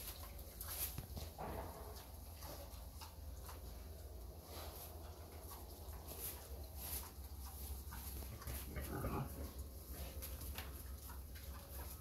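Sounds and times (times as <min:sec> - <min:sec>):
pig grunting: 0:08.3 - 0:10.2.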